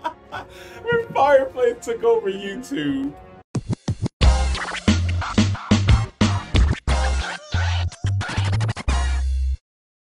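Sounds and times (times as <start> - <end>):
turntable scratching: 3.6 - 9.2
heavy bass music: 3.6 - 9.6.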